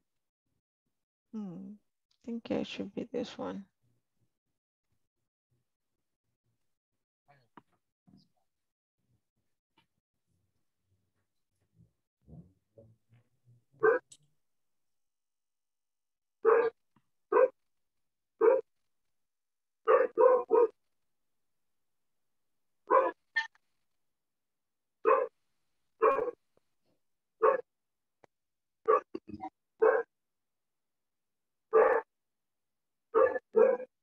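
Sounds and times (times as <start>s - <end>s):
dog barking: 13.8s - 14.1s, 16.4s - 16.8s, 17.4s - 17.6s, 18.4s - 18.7s, 19.9s - 20.8s, 22.9s - 23.2s, 25.0s - 25.3s, 26.0s - 26.4s, 27.4s - 27.7s, 28.8s - 29.1s, 29.8s - 30.1s, 31.7s - 32.1s, 33.2s - 33.9s.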